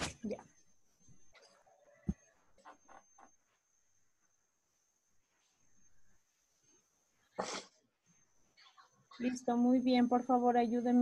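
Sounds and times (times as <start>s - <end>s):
faint high whine: 0.0s - 11.0s.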